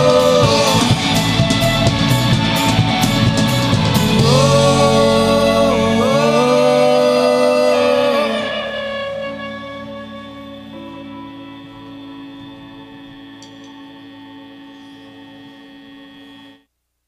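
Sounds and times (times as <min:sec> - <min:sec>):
rock band chord ringing out: 0:00.0 - 0:16.6.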